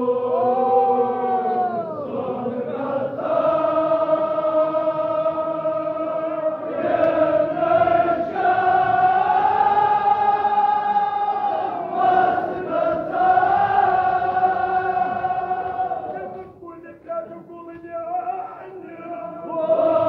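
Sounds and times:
men chanting in unison: 0:00.0 - 0:20.0.

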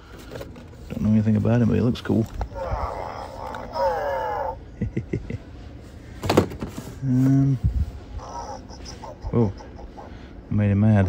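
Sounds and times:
electronic droid grumble: 0:02.5 - 0:04.6.

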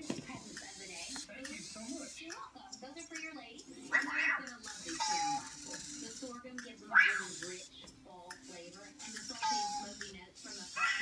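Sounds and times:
toy robot driving: 0:00.0 - 0:02.4, 0:03.0 - 0:07.7, 0:08.3 - 0:11.0
high chirping electronic vocalization: 0:03.7 - 0:07.8, 0:08.4 - 0:11.0.

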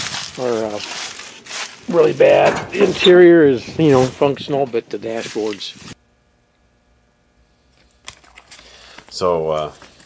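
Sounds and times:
paper and sticker rustling: 0:00.0 - 0:06.0.

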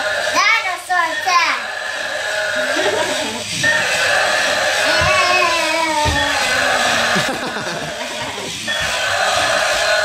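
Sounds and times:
toy electronic sound effects: 0:00.0 - 0:07.4.

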